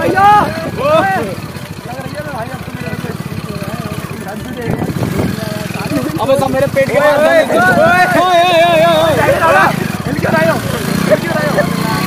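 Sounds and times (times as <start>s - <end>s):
motorcycle engine running: 0.0s - 12.0s
people talking: 0.0s - 12.0s.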